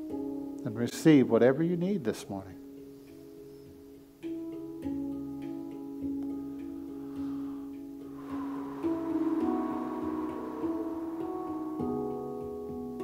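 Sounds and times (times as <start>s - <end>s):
handpan notes: 0.0s - 0.6s, 2.6s - 13.0s.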